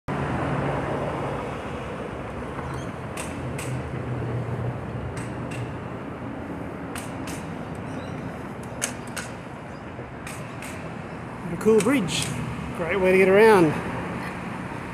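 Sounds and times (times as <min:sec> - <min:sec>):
wind and tyre rolling noise: 0:00.1 - 0:14.9.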